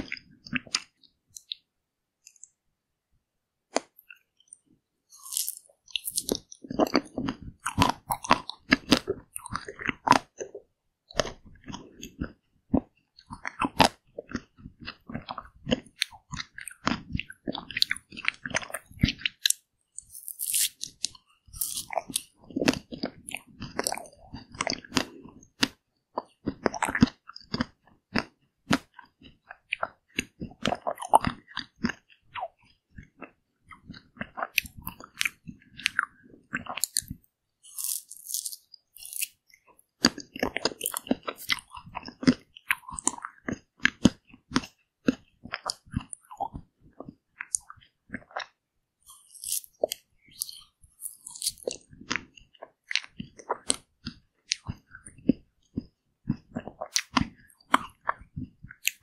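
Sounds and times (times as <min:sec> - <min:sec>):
close biting and chewing: 0:00.0 - 0:01.6, 0:03.8 - 0:59.0
ice cream bar coating crunching: 0:05.1 - 0:10.5, 0:11.7 - 0:28.9, 0:34.2 - 0:39.4, 0:49.1 - 0:54.8.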